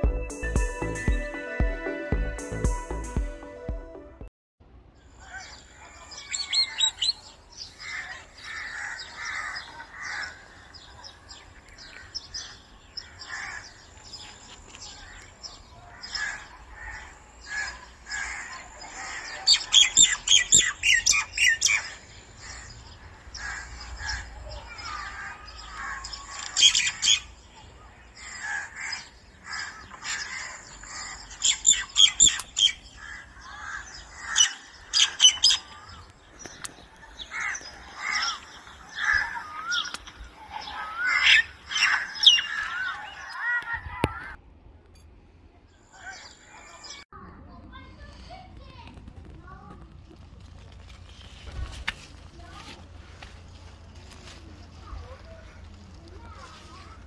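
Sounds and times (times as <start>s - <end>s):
birds chirping and calling: 5.0s - 44.4s, 45.7s - 47.0s.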